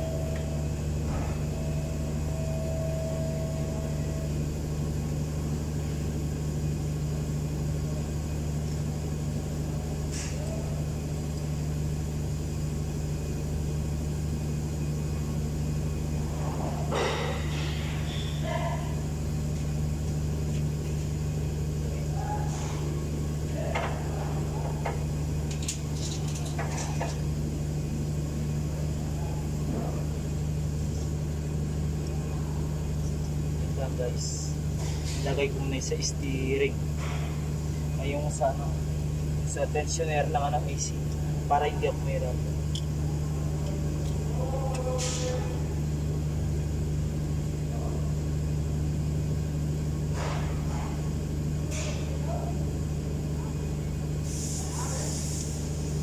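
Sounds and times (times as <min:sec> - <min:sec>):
low machine hum: 0:00.0 - 0:56.0.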